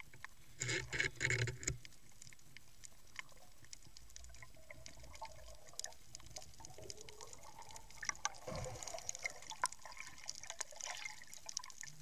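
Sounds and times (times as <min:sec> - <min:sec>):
rough underwater bursts: 0:08.4 - 0:09.4.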